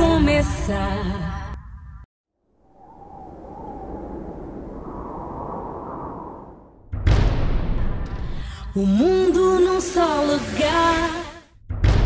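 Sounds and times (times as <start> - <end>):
low noisy sound effect: 2.4 - 6.9.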